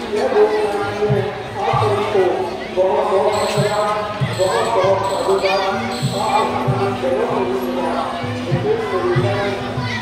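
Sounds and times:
crowd noise: 0.0 - 10.0
person speaking or chanting: 0.0 - 10.0.

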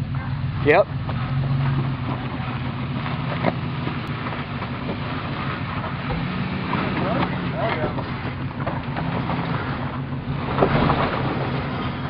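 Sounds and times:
truck engine running: 0.0 - 12.0.

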